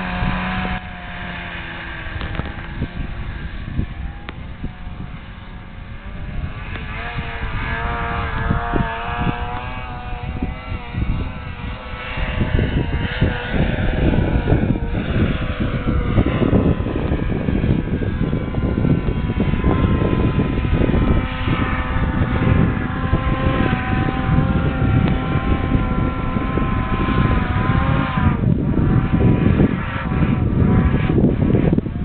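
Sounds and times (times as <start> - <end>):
rumble of machine over snow: 0.0 - 32.0
snowmobile engine running hard: 0.0 - 32.0.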